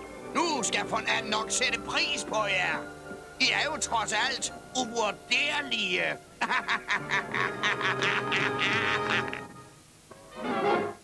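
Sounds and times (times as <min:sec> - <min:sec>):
background music: 0:00.0 - 0:11.0
person speaking: 0:00.3 - 0:06.2.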